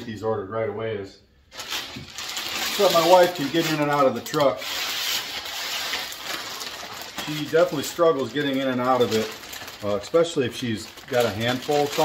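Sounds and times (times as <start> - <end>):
plastic wrapping crinkling: 1.5 - 12.0.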